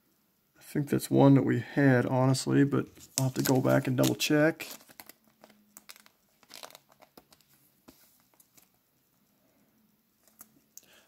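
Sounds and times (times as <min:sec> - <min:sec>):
crinkling of cards and foil wrappers: 0:03.0 - 0:08.8.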